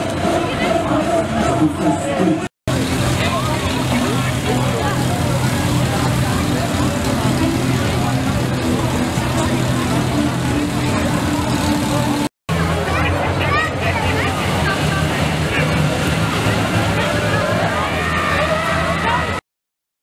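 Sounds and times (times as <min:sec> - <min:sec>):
crowd talking: 0:00.0 - 0:19.4
engine running steadily: 0:00.0 - 0:19.4.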